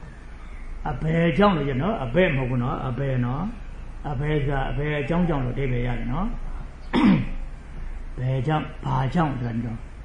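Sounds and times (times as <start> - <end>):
man clearing his throat: 6.9 - 7.4.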